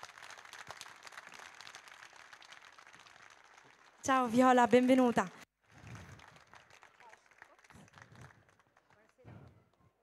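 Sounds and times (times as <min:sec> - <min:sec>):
faint audience applause: 0:00.0 - 0:04.9, 0:05.6 - 0:10.0.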